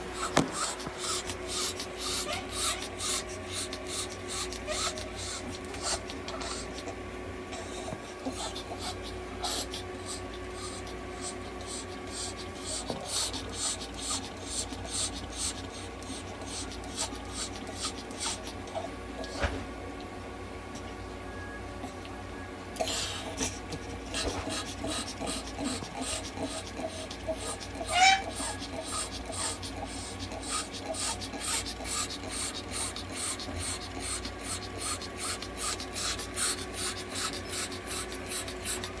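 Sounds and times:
low equipment hum: 0.0s - 39.0s
dog panting quickly: 0.1s - 19.4s, 22.9s - 39.0s.

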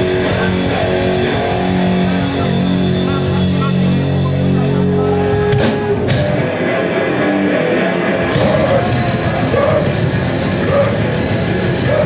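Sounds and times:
bass guitar: 0.0s - 12.0s
distorted electric guitar: 0.0s - 12.0s
drums: 0.0s - 12.0s.

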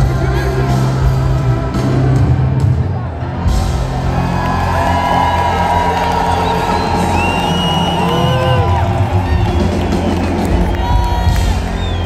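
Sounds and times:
loud amplified live music: 0.0s - 12.0s
crowd cheering and whooping: 3.4s - 12.0s.

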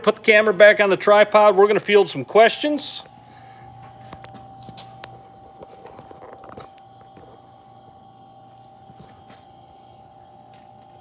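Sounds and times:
steady quiet hum: 0.0s - 11.0s.

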